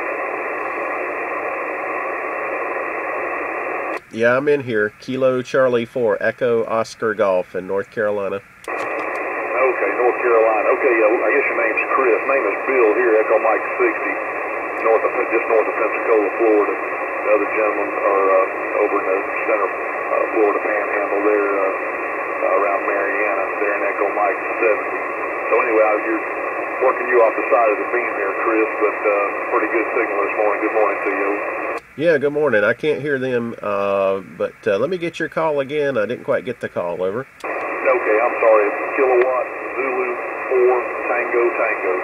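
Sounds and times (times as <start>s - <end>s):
radio receiver hiss: 0.0s - 42.0s.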